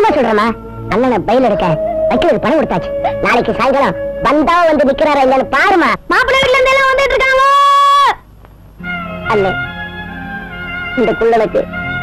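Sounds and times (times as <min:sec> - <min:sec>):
film background music: 0:00.0 - 0:07.3, 0:08.8 - 0:12.0
high-pitched shouted call: 0:01.5 - 0:08.2.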